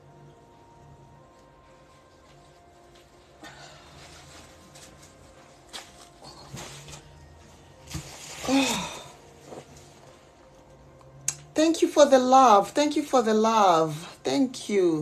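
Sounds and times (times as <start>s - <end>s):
person sighing: 8.4s - 9.2s.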